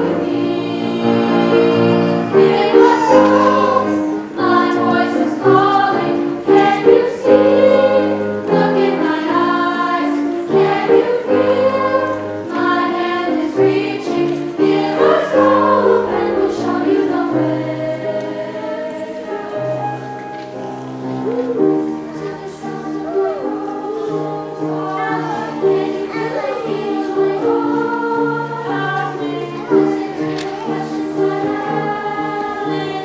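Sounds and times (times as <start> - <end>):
choir singing: 0.0 - 33.0
piano accompaniment: 0.0 - 33.0.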